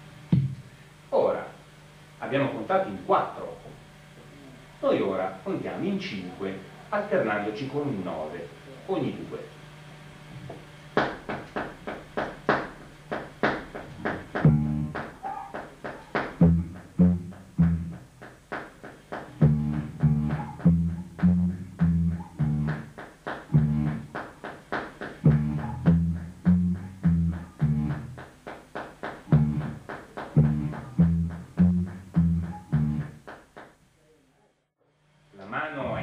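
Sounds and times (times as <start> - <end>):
electric bass guitar notes: 14.1 - 15.3, 16.2 - 18.3, 19.3 - 24.3, 25.2 - 28.4, 29.2 - 33.3.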